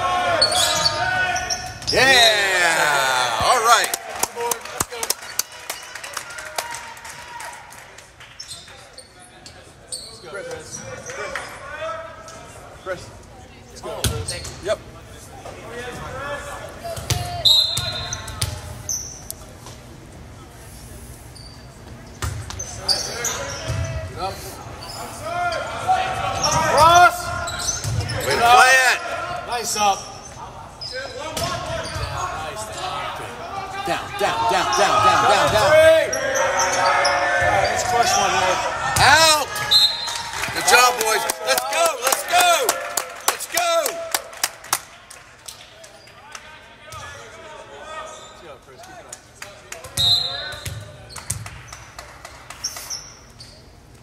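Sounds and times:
players shouting: 0.0 - 5.0, 31.1 - 44.4
referee's whistle: 17.3 - 18.4, 39.6 - 40.2, 50.0 - 50.8.

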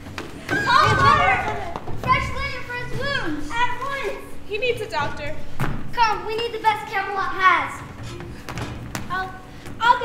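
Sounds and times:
children's high-pitched voices: 0.4 - 4.8, 9.1 - 10.0.

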